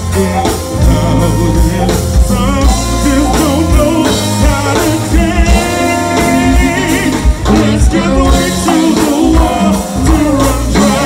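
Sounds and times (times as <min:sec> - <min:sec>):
live band playing: 0:00.0 - 0:11.0
person singing: 0:00.0 - 0:11.0.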